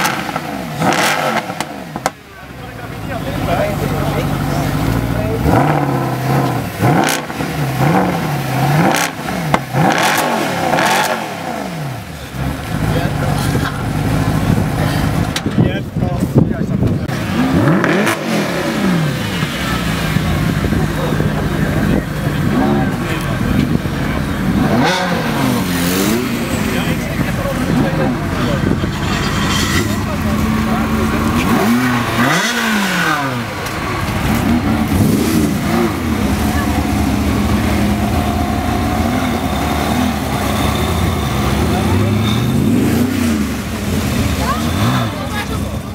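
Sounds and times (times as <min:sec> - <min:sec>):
car engine idling and revving: 0:00.0 - 0:45.9.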